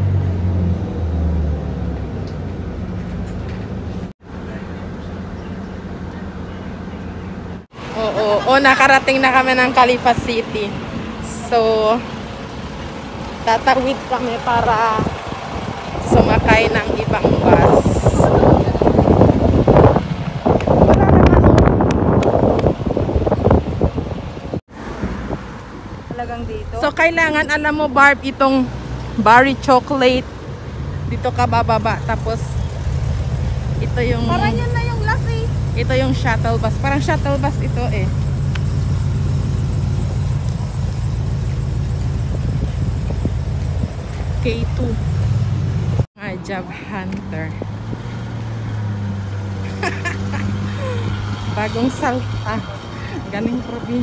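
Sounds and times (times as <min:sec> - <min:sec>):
road traffic: 0:00.0 - 0:54.0
vehicle engine humming: 0:00.0 - 0:54.0
wind buffeting microphone: 0:14.9 - 0:24.6.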